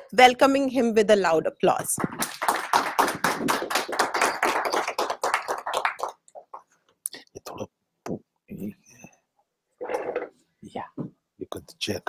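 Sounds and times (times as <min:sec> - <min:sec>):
audience applauding: 0:02.0 - 0:06.6.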